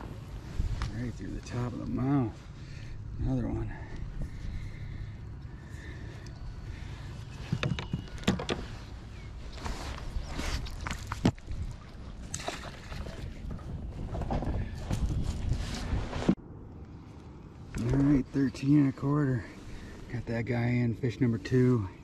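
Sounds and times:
steady low rumble: 0:00.0 - 0:07.7, 0:08.6 - 0:22.0
water splashes: 0:10.5 - 0:13.5.

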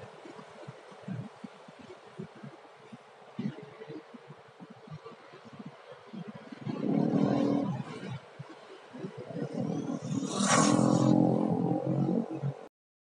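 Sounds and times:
motorbike engines hum: 0:09.0 - 0:12.7
rc car high whine passing: 0:09.8 - 0:12.0.

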